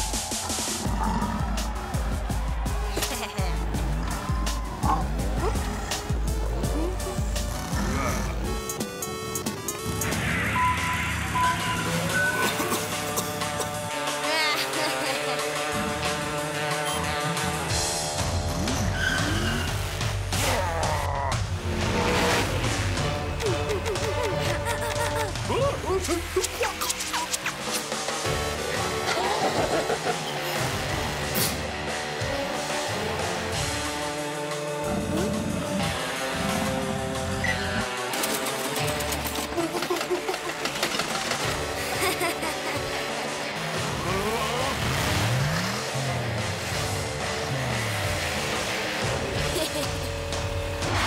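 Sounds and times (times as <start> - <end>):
background music: 0.0 - 51.0
cartoon race car engine revving: 3.0 - 51.0.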